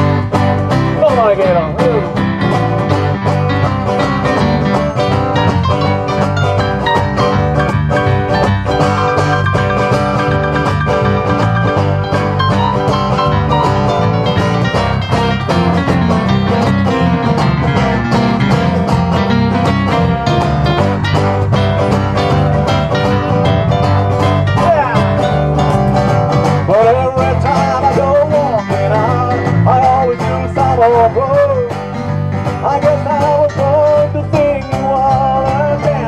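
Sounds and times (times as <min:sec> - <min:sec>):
electric bass: 0:00.0 - 0:36.0
keyboard: 0:00.0 - 0:36.0
strummed acoustic guitars: 0:00.0 - 0:36.0.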